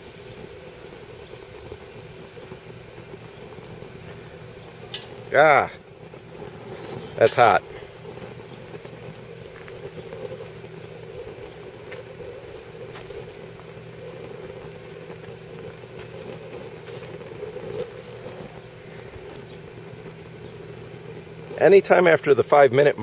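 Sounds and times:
fan-forced flame rushing: 0:00.0 - 0:23.0
faint ticks: 0:06.4 - 0:21.6.

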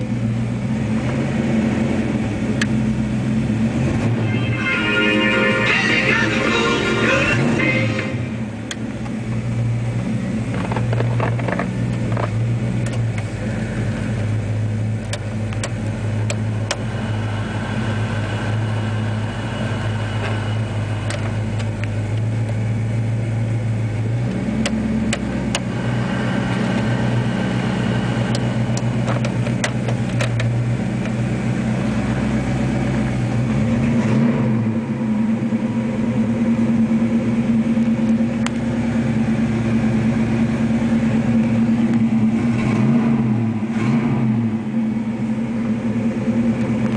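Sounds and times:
car engine idling: 0:00.0 - 0:46.9
dash controls clicking: 0:10.5 - 0:13.4, 0:15.0 - 0:16.9, 0:21.0 - 0:22.6, 0:24.3 - 0:25.7, 0:28.3 - 0:31.2.

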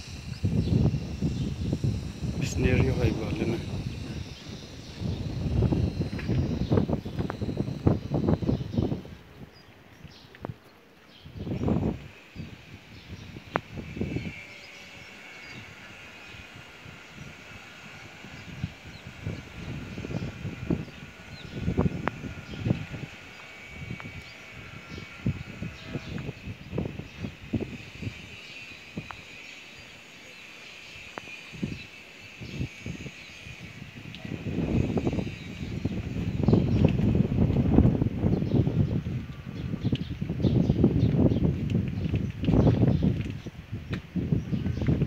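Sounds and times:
wind buffeting microphone: 0:00.0 - 0:30.1, 0:31.0 - 0:45.0.

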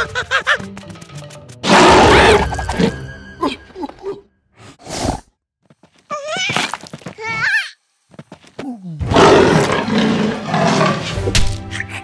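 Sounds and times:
background music: 0:00.0 - 0:04.4, 0:09.7 - 0:12.0.

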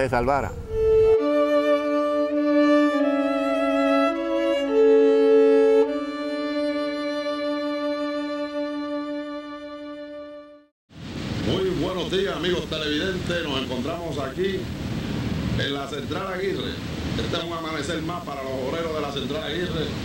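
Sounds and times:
slow violin music: 0:00.6 - 0:10.7.

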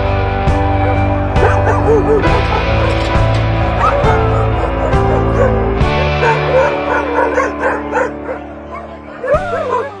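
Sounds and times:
background music with held tones: 0:00.0 - 0:10.0
dogs yipping and whining: 0:00.7 - 0:10.0.

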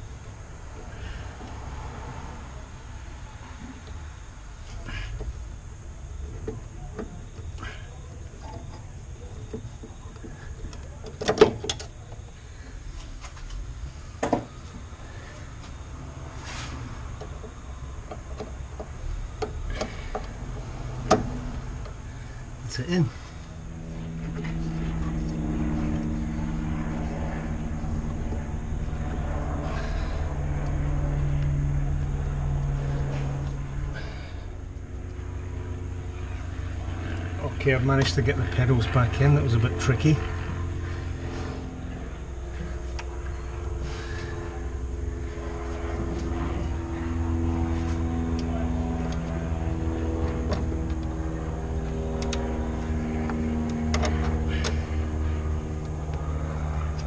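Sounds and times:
low engine-like drone: 0:00.0 - 0:57.0.

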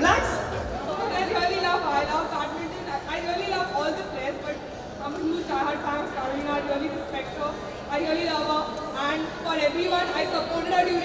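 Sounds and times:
indistinct chatter in a hall: 0:00.0 - 0:11.0.

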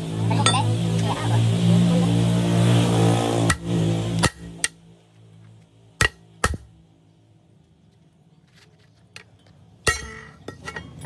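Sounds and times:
hammer striking steel: 0:03.3 - 0:04.8, 0:06.0 - 0:06.8, 0:09.8 - 0:11.0.

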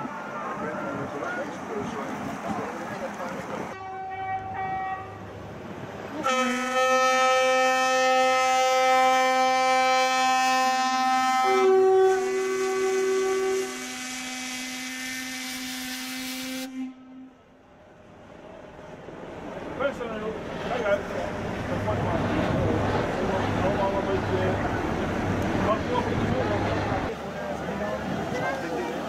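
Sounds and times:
ship's horn blasts: 0:03.8 - 0:05.3, 0:06.1 - 0:17.6
higher-pitched horn: 0:06.2 - 0:17.5.

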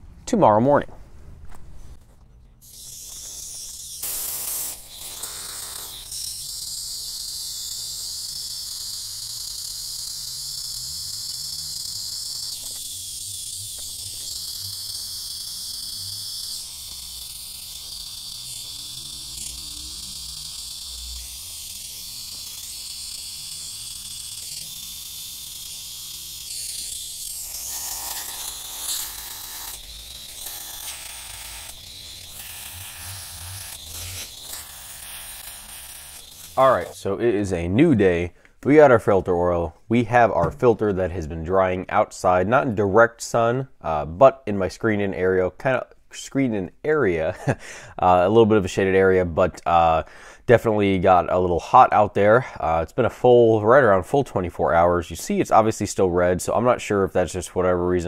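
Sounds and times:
hose jet of water splashing: 0:02.6 - 0:06.3.

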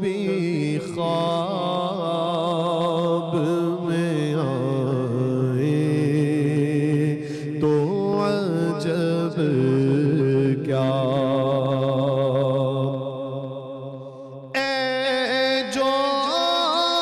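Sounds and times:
man singing devotional song: 0:00.0 - 0:17.0.

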